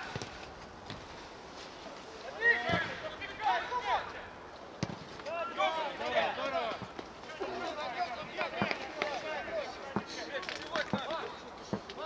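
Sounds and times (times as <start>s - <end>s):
players shouting: 2.3s - 4.4s, 5.2s - 11.1s.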